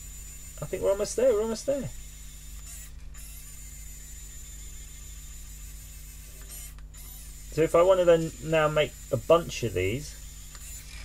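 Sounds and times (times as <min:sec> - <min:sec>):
small motor humming: 0:00.0 - 0:11.0.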